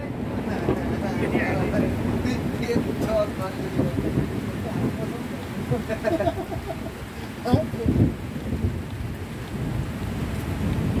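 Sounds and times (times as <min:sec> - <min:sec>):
steady rain: 0:00.0 - 0:11.0
wind gusts rumbling on microphone: 0:00.0 - 0:11.0.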